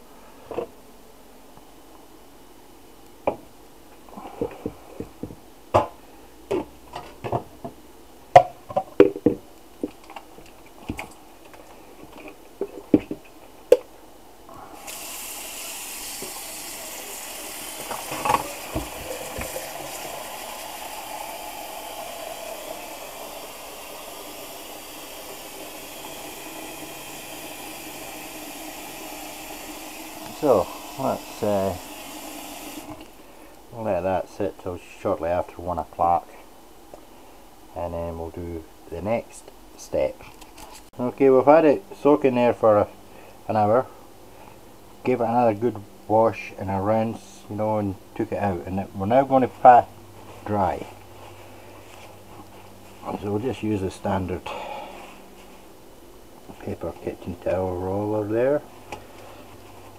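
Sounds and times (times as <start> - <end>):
tap water running into bowl: 14.8 - 33.1.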